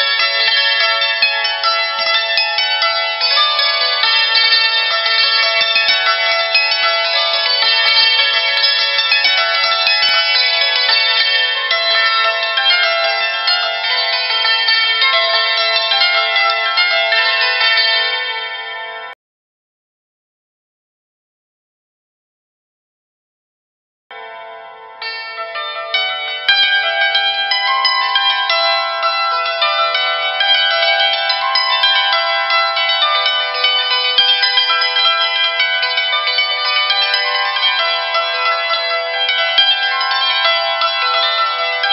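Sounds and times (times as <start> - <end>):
hammered dulcimer playing: 0.0 - 19.1, 24.1 - 41.9.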